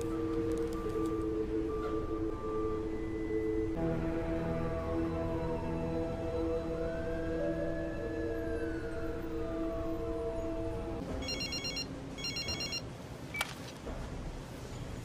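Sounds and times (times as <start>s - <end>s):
film score held tones: 0.0s - 15.0s
phone ringing electronic trills: 11.2s - 12.9s.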